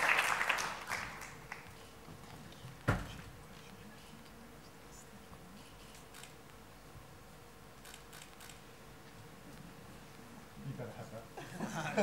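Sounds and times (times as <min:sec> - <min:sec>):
faint camera shutter clicks: 0:05.8 - 0:06.6, 0:07.8 - 0:08.7.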